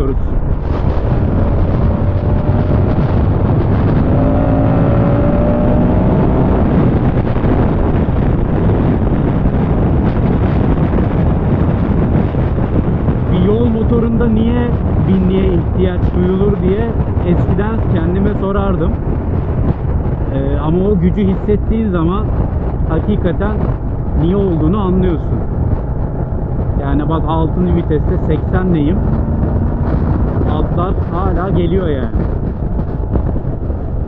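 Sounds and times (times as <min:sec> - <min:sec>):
motorcycle engine accelerating: 0:00.0 - 0:13.3, 0:14.1 - 0:20.8, 0:22.2 - 0:34.0
wind rush on microphone: 0:00.0 - 0:34.0.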